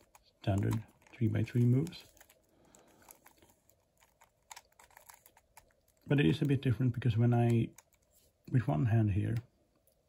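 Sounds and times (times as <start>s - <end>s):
plastic clicks of puzzle cube turning: 0.0s - 6.6s, 7.3s - 8.2s.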